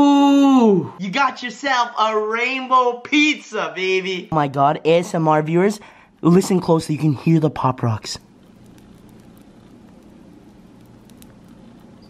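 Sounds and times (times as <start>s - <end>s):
popping candy crackling: 6.2s - 12.0s.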